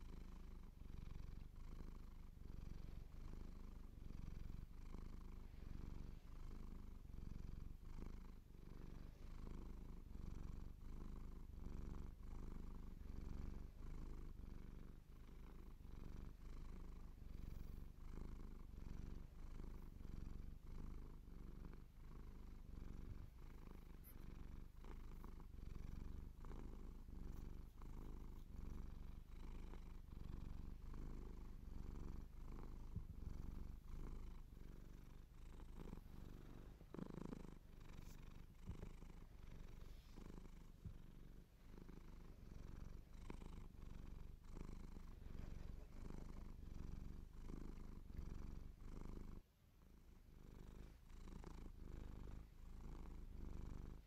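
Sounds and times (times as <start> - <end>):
cat purring: 0.0 - 54.0.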